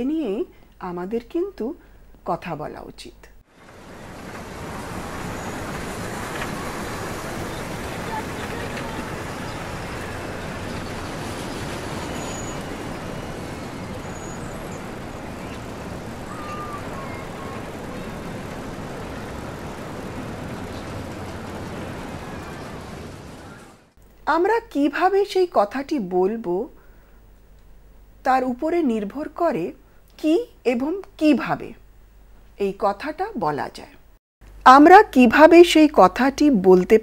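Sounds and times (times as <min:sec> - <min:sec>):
road traffic rushing: 0:03.5 - 0:24.0.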